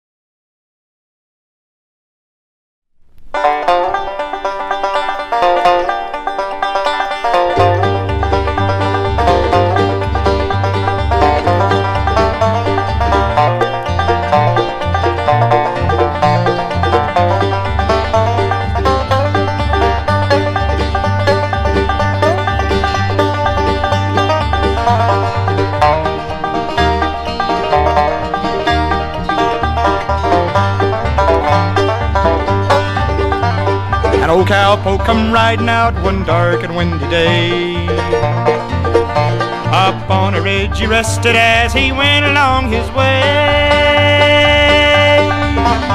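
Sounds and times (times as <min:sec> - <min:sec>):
banjo picking: 0:03.2 - 0:45.9
bluegrass band playing: 0:03.2 - 0:45.9
bass line on two low notes: 0:07.3 - 0:45.9.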